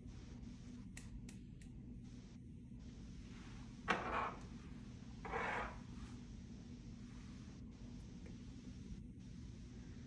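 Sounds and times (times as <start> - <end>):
scraping rustle on countertop: 5.2 - 6.2.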